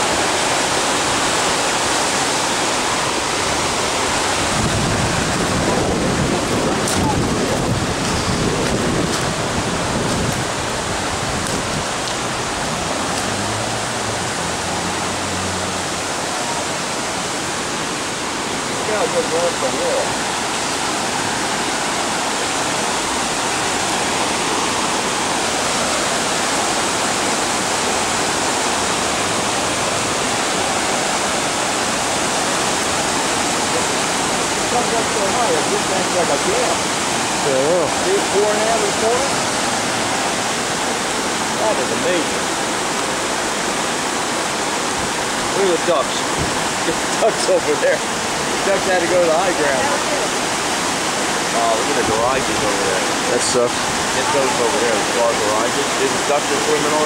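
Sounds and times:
floodwater rushing: 0.0s - 57.0s.

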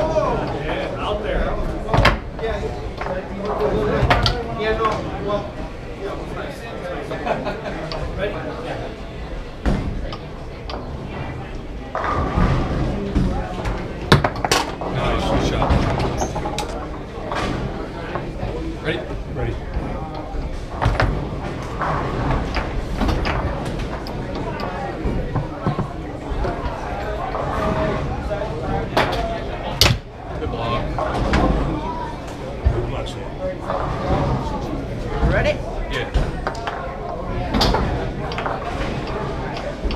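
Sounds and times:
chatter of voices: 0.0s - 39.9s
foosball rods clacking: 1.8s - 5.4s, 9.6s - 30.1s, 36.1s - 39.9s
foosball ball knocks: 11.9s - 18.4s.

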